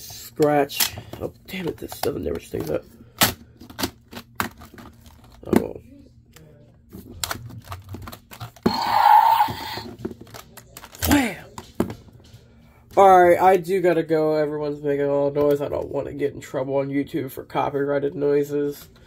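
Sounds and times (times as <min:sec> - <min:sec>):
electronic toy roar: 0:08.6 - 0:09.9.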